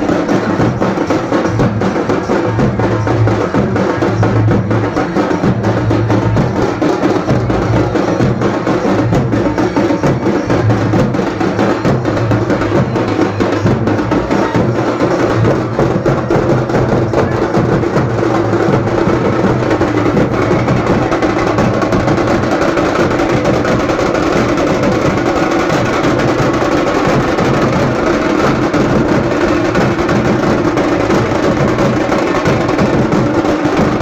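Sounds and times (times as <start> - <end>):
drums beaten with sticks: 0.0 - 34.0.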